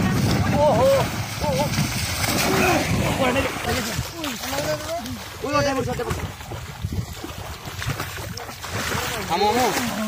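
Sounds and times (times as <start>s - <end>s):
floodwater sloshing and splashing: 0.0s - 10.0s
wind rumbling on microphone: 0.0s - 10.0s.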